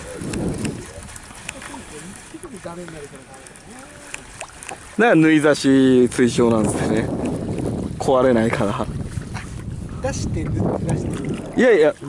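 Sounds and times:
wind and water noise: 0.0 - 12.0
faint clicks: 2.8 - 4.8.

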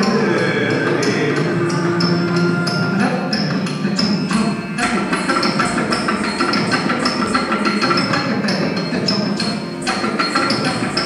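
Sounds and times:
ankle bells jingling: 0.0 - 11.0
classical music accompaniment: 0.0 - 11.0
rhythmic foot strikes: 0.0 - 11.0.

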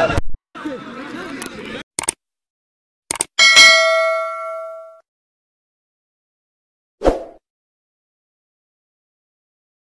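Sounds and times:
bell ding: 3.4 - 5.0.

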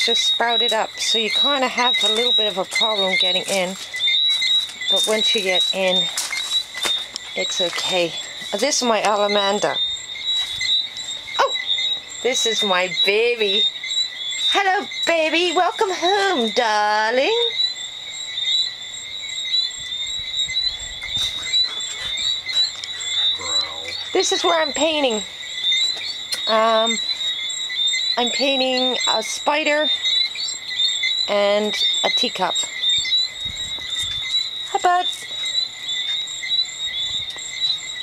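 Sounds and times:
high-pitched chirping chorus: 0.0 - 38.0.

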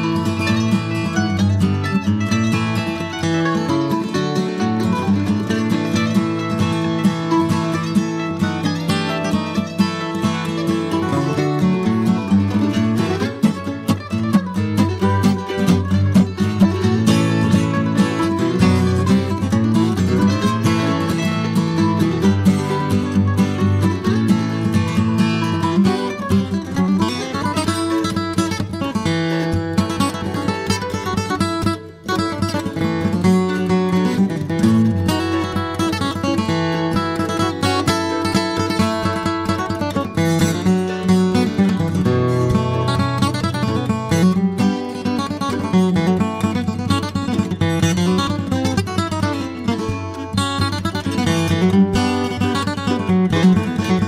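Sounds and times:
bluegrass on guitar and mandolin: 0.0 - 54.0.

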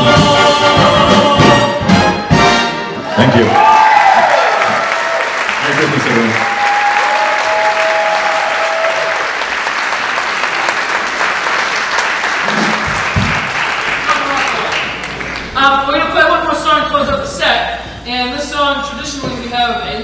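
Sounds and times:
audience applauding: 3.3 - 15.6.

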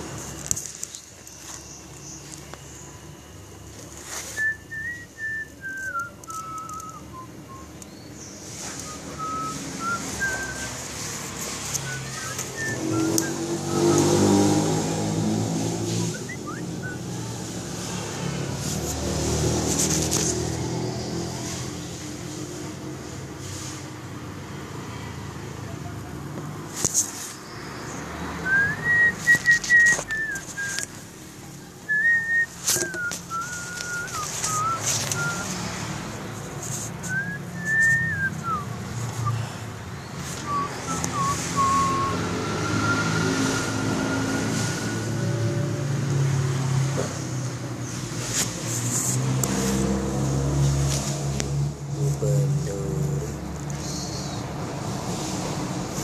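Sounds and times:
low engine-like rumbling: 0.0 - 56.0
whistled phrases: 4.2 - 8.0, 8.6 - 10.9, 11.8 - 14.1, 16.0 - 17.2, 28.4 - 31.0, 31.8 - 35.5, 37.0 - 39.5, 40.4 - 45.1.

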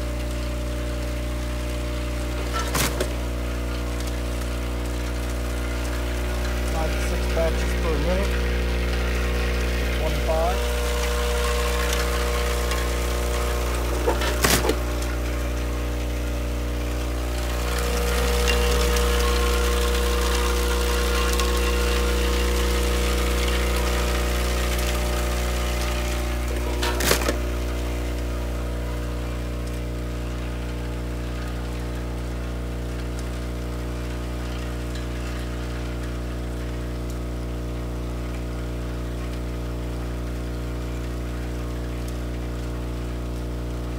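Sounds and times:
vibratory bowl feeder humming: 0.0 - 43.9.

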